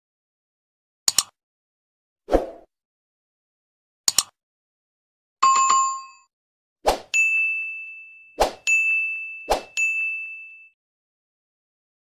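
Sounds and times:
bright bell-like ding: 0:07.2 - 0:10.8.

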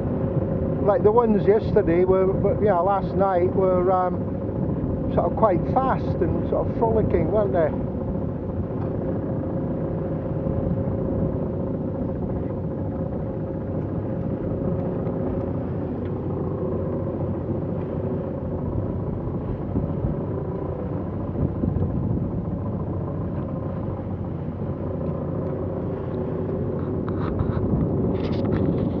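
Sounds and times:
low rumble of yacht: 0:00.0 - 0:29.0
water rushing along hull: 0:00.0 - 0:29.0.

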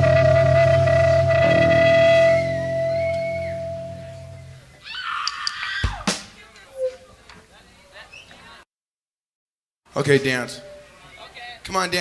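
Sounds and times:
electric guitar and bass chord: 0:00.0 - 0:04.6.

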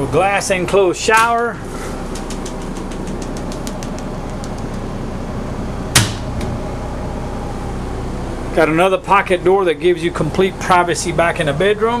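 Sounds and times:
steady mechanical hum: 0:00.0 - 0:12.0
sharp knock: 0:05.9 - 0:06.5.

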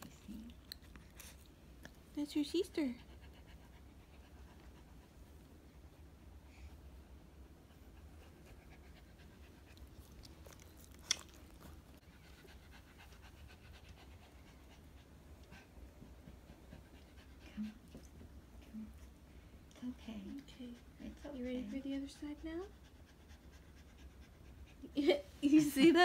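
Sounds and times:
small dog panting: 0:00.0 - 0:25.9.

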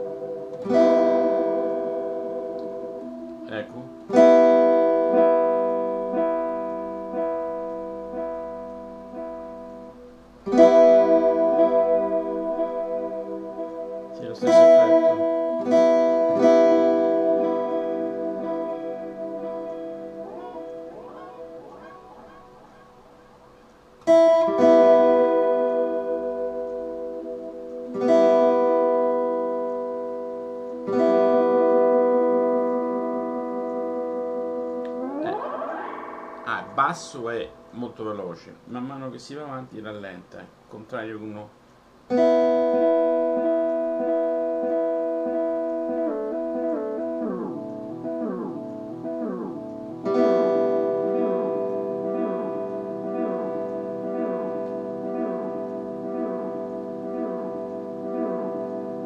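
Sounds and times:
acoustic guitar chords strummed: 0:00.0 - 0:38.9.

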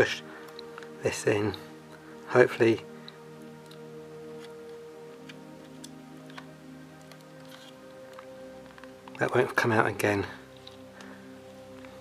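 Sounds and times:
soft music with held tones: 0:00.0 - 0:12.0.

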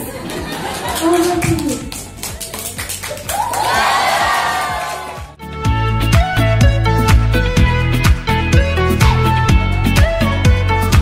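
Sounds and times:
audience clapping: 0:00.0 - 0:05.4
background music: 0:00.0 - 0:11.0
people cheering: 0:02.4 - 0:05.4.

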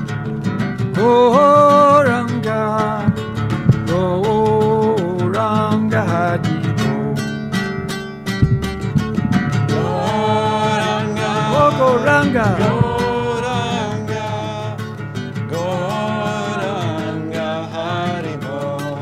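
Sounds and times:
acoustic guitar: 0:00.0 - 0:19.0
man singing a chant: 0:01.0 - 0:03.2, 0:09.7 - 0:14.8, 0:15.5 - 0:19.0.

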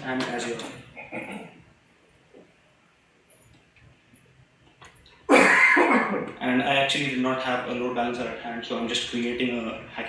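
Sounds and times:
man coughing: 0:05.3 - 0:06.3.

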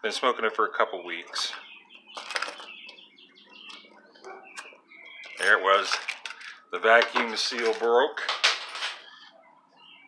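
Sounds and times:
faint bird chirps: 0:00.9 - 0:06.7, 0:09.0 - 0:10.0.

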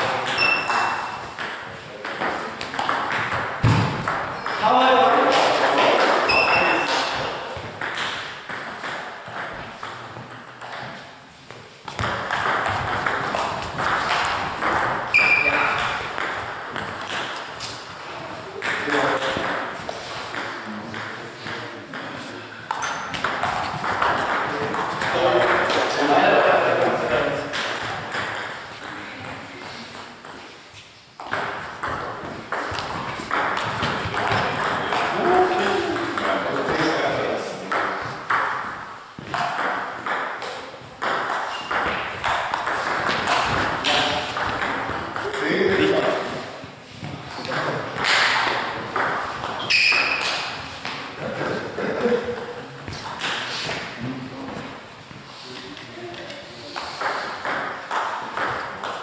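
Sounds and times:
people's voices in a hall: 0:00.0 - 0:08.5, 0:12.8 - 0:59.0.

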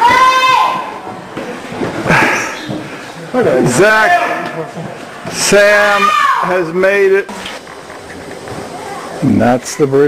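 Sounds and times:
jumbled voices of people: 0:07.3 - 0:10.0.

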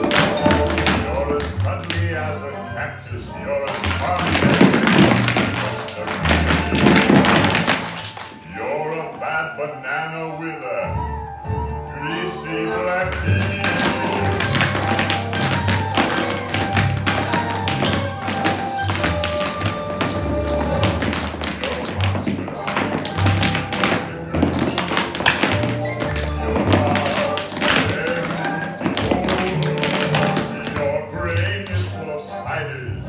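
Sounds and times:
tap shoes clattering on floor: 0:00.0 - 0:02.1, 0:03.7 - 0:08.4, 0:13.1 - 0:31.9.

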